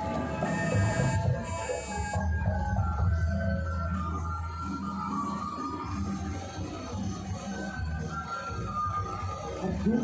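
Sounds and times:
music over sound system: 0.0s - 10.0s.

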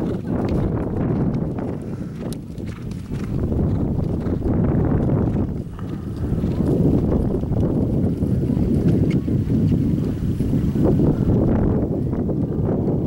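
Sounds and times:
horse hoofbeats: 0.0s - 13.0s
steady low rumble: 0.0s - 13.0s.

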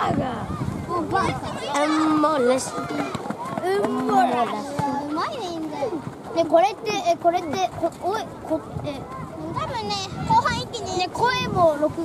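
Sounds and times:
voices shouting: 0.0s - 6.3s.

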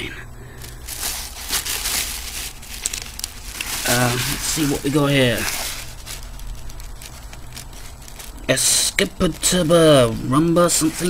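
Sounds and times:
bag crinkling: 0.5s - 11.0s.

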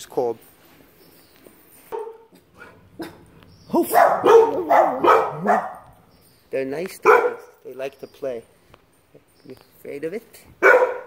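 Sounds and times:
dogs barking: 1.9s - 6.1s, 6.9s - 7.6s, 10.6s - 11.0s.

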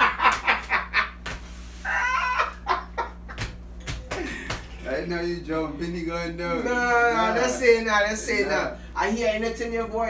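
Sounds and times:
men laughing hard: 0.0s - 1.2s, 1.8s - 4.8s.

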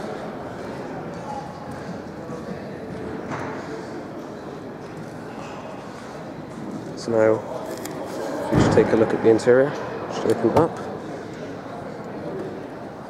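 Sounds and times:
room noise: 0.0s - 13.0s.

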